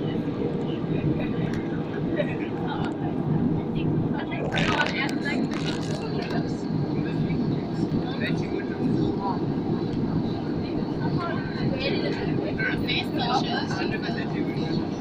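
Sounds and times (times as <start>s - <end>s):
airliner cabin drone: 0.0s - 15.0s
indistinct passenger voices: 0.0s - 15.0s.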